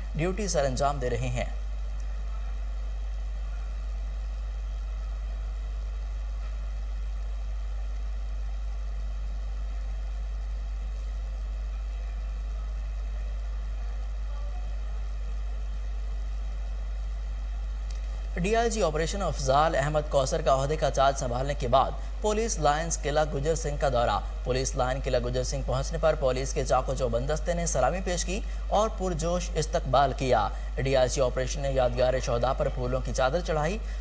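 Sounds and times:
low electrical hum with hiss: 0:00.0 - 0:34.0.

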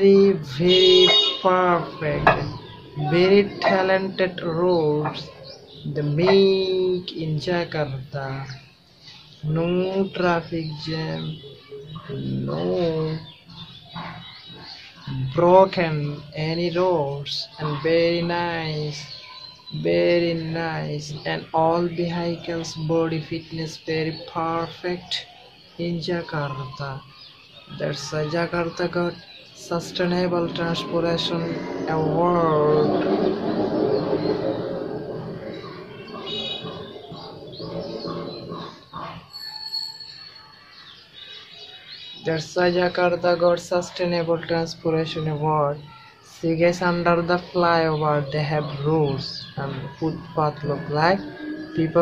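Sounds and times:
man speaking: 0:00.0 - 0:08.6, 0:09.4 - 0:13.3, 0:19.7 - 0:25.2, 0:27.7 - 0:33.5, 0:42.2 - 0:52.0
birds chirping: 0:00.0 - 0:52.0.

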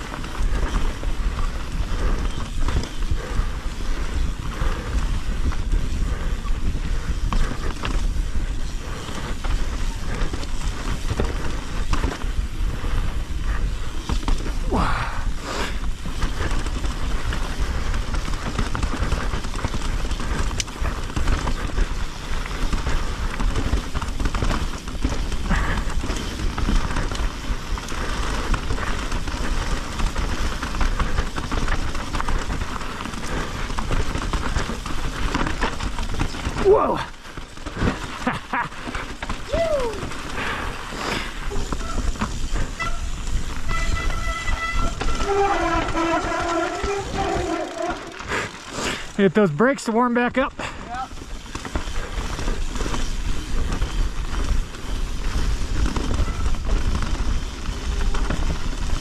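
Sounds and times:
wind buffeting microphone: 0:00.0 - 0:38.5, 0:39.1 - 0:48.5
bike rattling over rock: 0:00.0 - 0:59.0
disc brakes squealing: 0:41.6 - 0:48.3.

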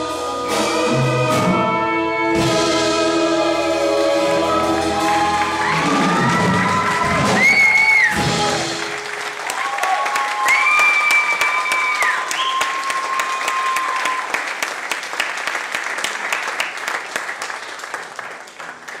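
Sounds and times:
audience clapping: 0:03.6 - 0:19.0
cheering calls: 0:04.0 - 0:14.6.

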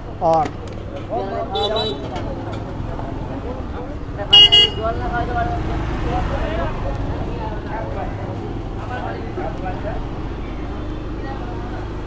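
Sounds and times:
low traffic noise: 0:00.0 - 0:12.0
people talking: 0:00.0 - 0:12.0
horn toots: 0:04.3 - 0:04.9.

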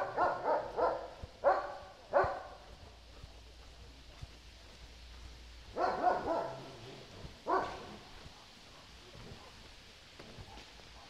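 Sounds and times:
dog barking: 0:00.0 - 0:02.7, 0:05.7 - 0:09.6, 0:10.4 - 0:11.0.

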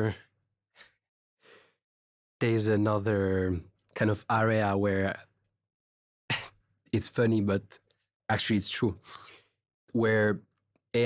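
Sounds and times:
man breathing: 0:01.4 - 0:01.8, 0:09.0 - 0:09.6.

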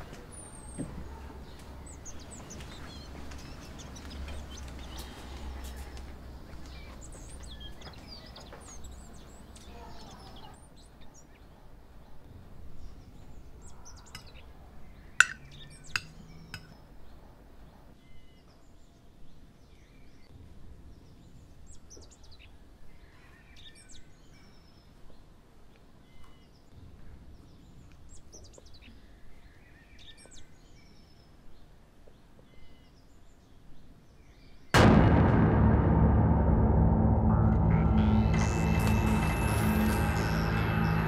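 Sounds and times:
low outdoor hum: 0:00.0 - 0:17.9, 0:34.8 - 0:41.0
small birds chirping: 0:00.0 - 0:20.3, 0:26.0 - 0:34.7.

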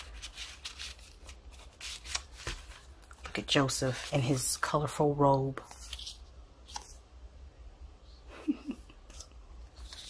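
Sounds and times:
paper rustling and sliding: 0:00.0 - 0:04.4, 0:09.1 - 0:10.0.

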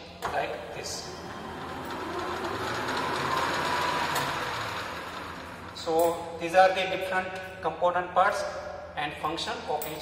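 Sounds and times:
lathe motor whining hum: 0:00.5 - 0:06.4.

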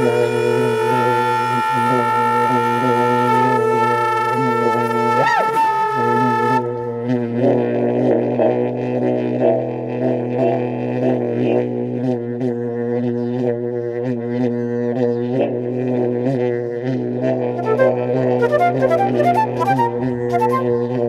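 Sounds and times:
low wind instrument drone: 0:00.0 - 0:21.0.

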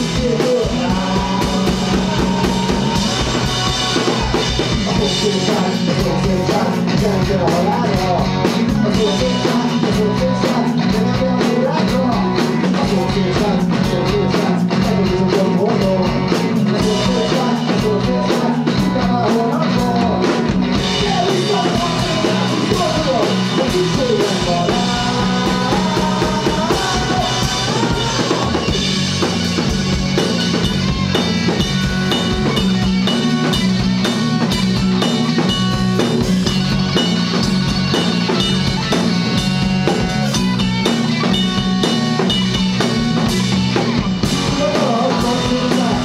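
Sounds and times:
drum kit beat: 0:00.0 - 0:46.0
electric guitar lead notes: 0:00.0 - 0:46.0.

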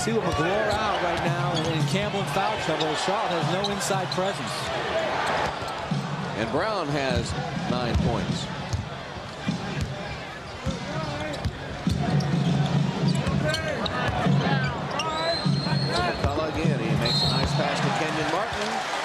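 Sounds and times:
crowd voices: 0:00.0 - 0:19.0.

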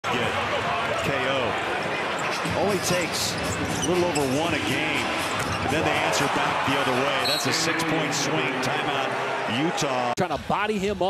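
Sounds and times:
arena crowd noise: 0:00.0 - 0:11.0
commentator talking: 0:05.7 - 0:11.0.

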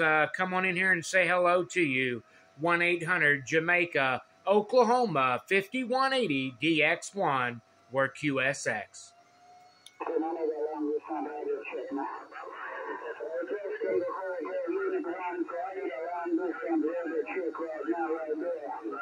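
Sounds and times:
radio voice through speaker: 0:10.0 - 0:19.0.

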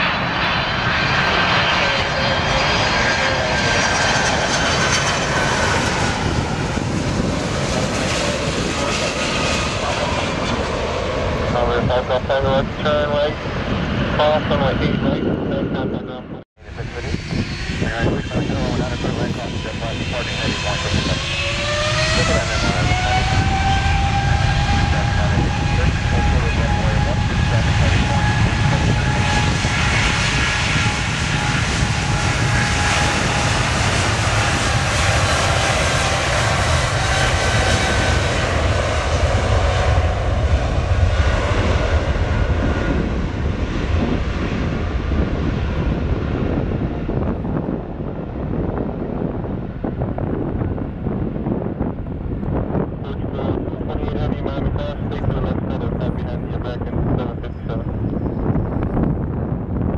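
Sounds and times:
jet engines spooling up: 0:16.7 - 0:47.8.

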